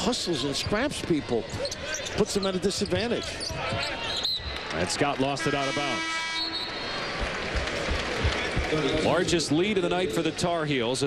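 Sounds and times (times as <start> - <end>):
arena crowd noise: 0.0 - 11.0
arena horn steady tone: 5.4 - 6.7
low thumps: 7.2 - 9.2.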